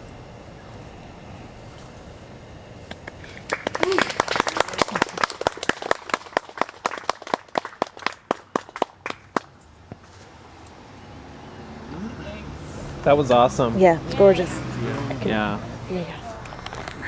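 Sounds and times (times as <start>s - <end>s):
small audience clapping: 2.9s - 9.6s
faint voices: 11.8s - 17.0s.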